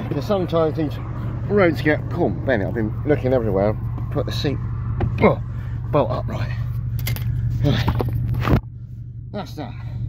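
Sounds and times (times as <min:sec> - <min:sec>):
low car engine hum: 0:00.0 - 0:10.0.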